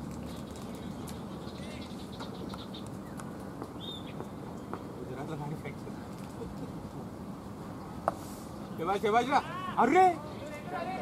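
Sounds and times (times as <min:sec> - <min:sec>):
birds calling: 0:00.1 - 0:05.0.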